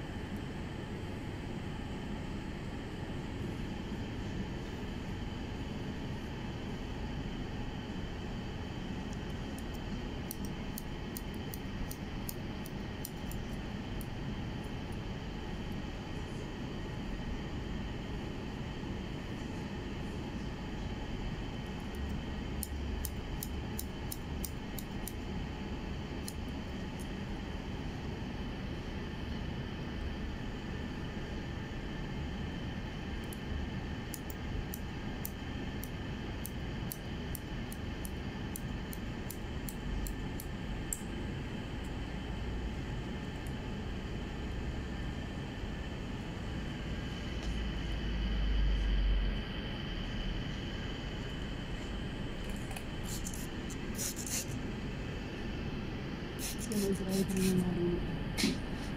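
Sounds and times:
steady background hum: 0.0 - 58.9
scissors snipping hair: 52.7 - 54.6, 56.4 - 57.6.

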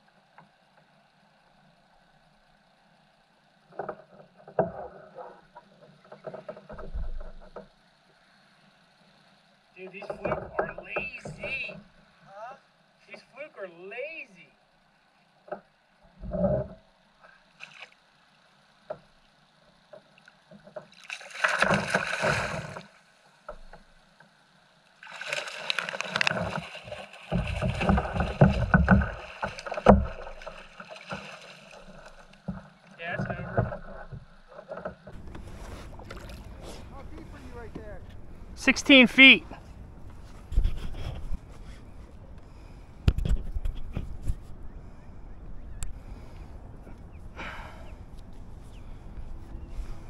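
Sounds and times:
water splashing: 17.5 - 18.1, 20.0 - 24.0, 25.0 - 40.5
knocks on a kayak: 27.3 - 30.5.

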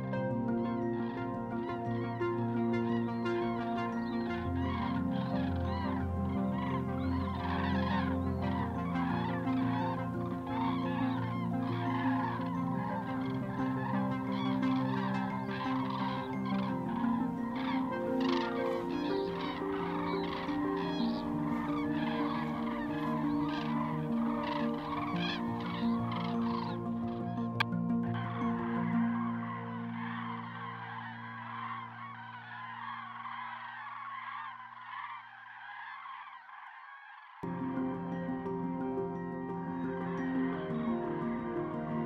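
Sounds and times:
soft background music: 0.0 - 35.8, 37.4 - 42.0
cranes calling: 0.0 - 42.0.

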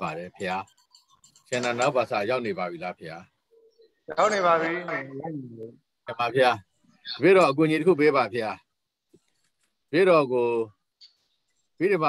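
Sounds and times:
man speaking over video call: 0.0 - 9.2, 9.8 - 12.0.

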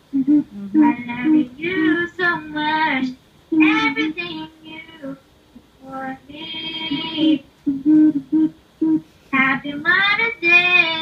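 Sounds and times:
girls humming: 0.0 - 2.1, 3.5 - 5.2, 5.8 - 9.8.

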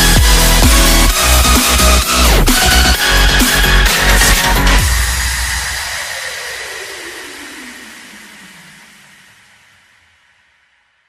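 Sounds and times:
synthesized noise sweep: 0.0 - 10.5.

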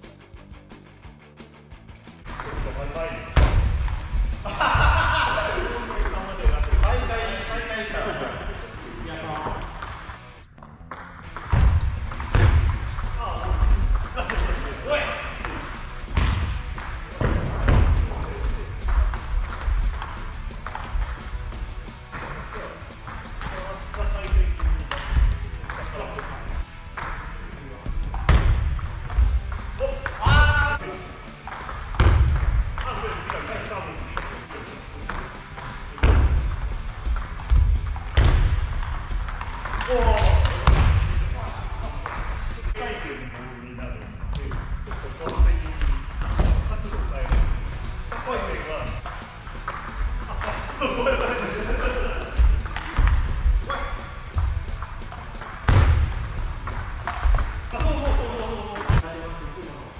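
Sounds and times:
ping pong ball hitting paddles: 9.4 - 14.4, 15.4 - 21.3, 22.1 - 27.3, 28.1 - 30.4, 31.4 - 41.0, 42.0 - 42.4, 52.3 - 59.0.

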